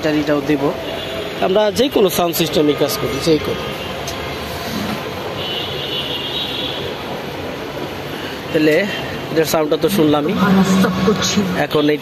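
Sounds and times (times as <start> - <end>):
loud rumbling background noise: 0.0 - 12.0.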